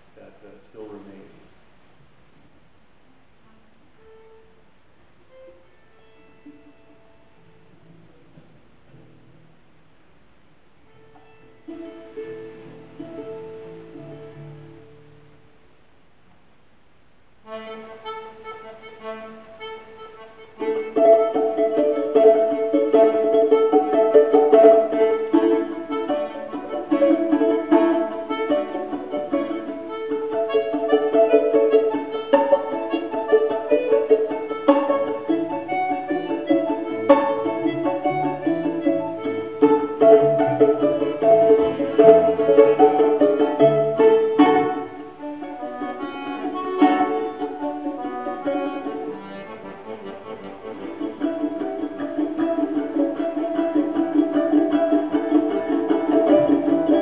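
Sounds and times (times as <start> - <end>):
plucked string melody: 5.2 - 10.0, 10.8 - 15.7, 17.4 - 57.0
button accordion: 17.4 - 57.0.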